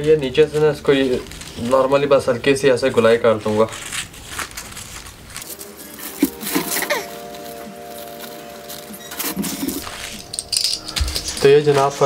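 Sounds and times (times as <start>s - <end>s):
paper rustling and crinkling: 0.0s - 12.0s
steady sustained tones: 5.4s - 12.0s.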